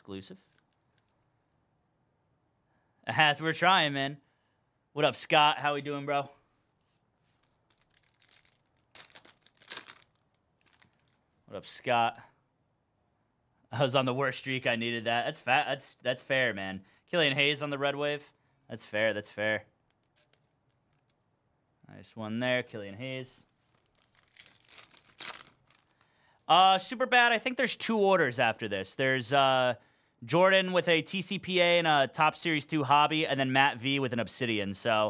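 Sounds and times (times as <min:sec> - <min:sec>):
foil wrapper crinkling: 0:07.3 - 0:11.3, 0:23.6 - 0:26.1.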